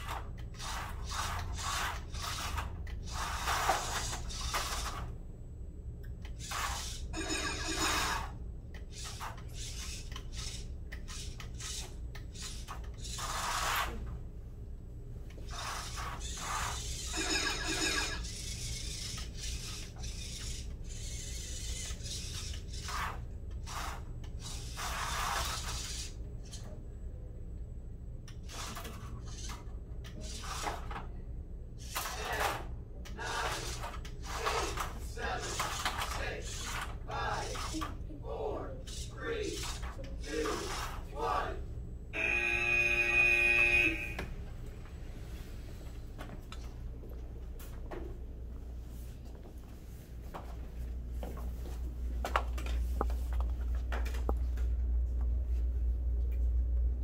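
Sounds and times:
robot motors whirring: 0:00.0 - 0:05.2, 0:06.2 - 0:14.1, 0:15.4 - 0:26.8, 0:28.3 - 0:31.0, 0:31.8 - 0:38.0, 0:38.8 - 0:41.4.

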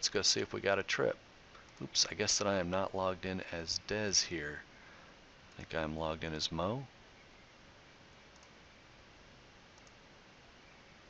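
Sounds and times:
faint hiss: 0:00.0 - 0:11.0
computer mouse clicks: 0:08.3 - 0:08.6, 0:09.8 - 0:10.0.

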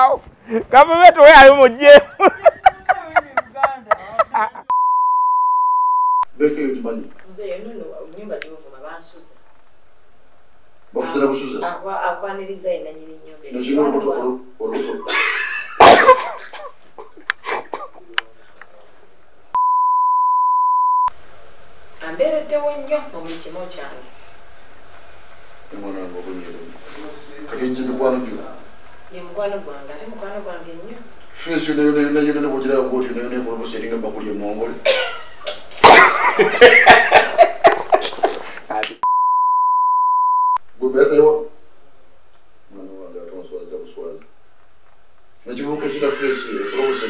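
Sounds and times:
steady test-tone beep: 0:04.7 - 0:06.2, 0:19.6 - 0:21.1, 0:39.0 - 0:40.6.

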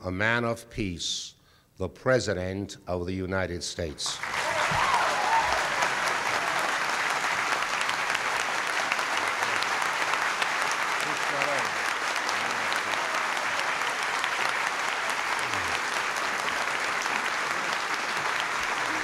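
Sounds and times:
audience applauding: 0:04.2 - 0:19.0
faint voices: 0:15.3 - 0:15.9.

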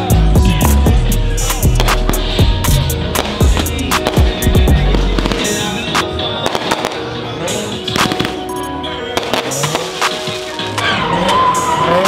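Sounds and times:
background music with deep bass: 0:00.0 - 0:12.0
fireworks bursting and crackling: 0:03.0 - 0:10.8.

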